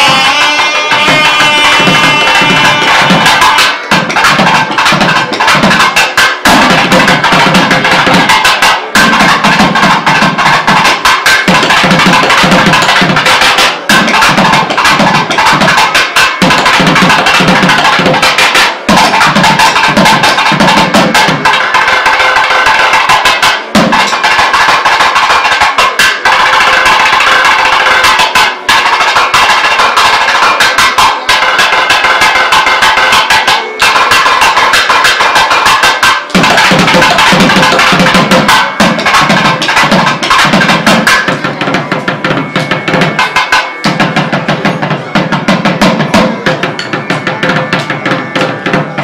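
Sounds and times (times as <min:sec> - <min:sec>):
drums in fast rhythm: 0:00.0 - 0:49.0.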